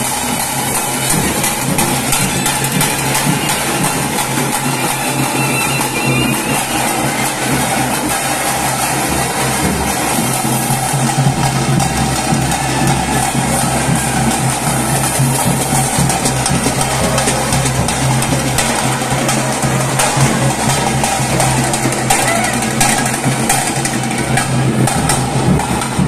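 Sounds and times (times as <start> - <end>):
drums beaten with sticks: 0.0 - 26.0.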